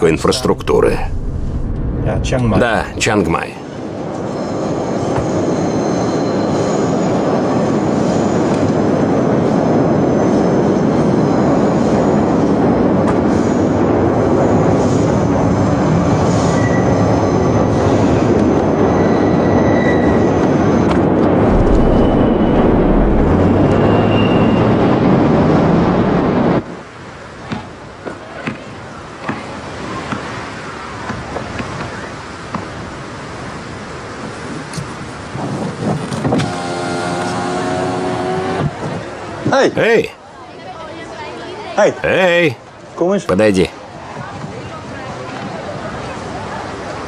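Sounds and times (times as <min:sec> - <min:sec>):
loud steady rumble: 0:00.0 - 0:03.2, 0:21.3 - 0:26.7
low hum: 0:00.0 - 0:03.8, 0:21.3 - 0:26.6.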